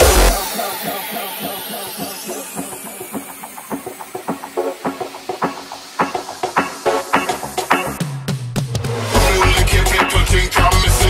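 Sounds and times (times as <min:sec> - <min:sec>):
sweeping high noise: 0:00.0 - 0:07.6
hardcore electronic dance music: 0:00.0 - 0:11.0
rhythmic snare hits: 0:00.0 - 0:11.0.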